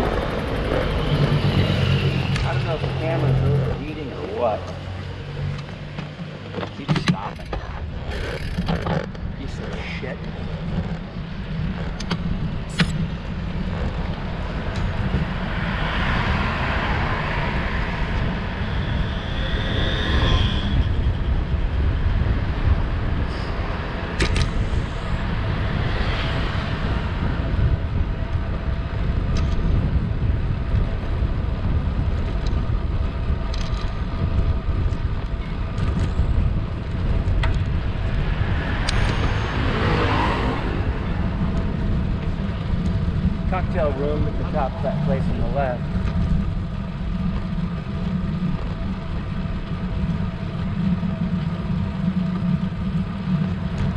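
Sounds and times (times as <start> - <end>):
motor vehicles passing: 0.0 - 53.9
wind buffeting microphone: 0.0 - 53.9.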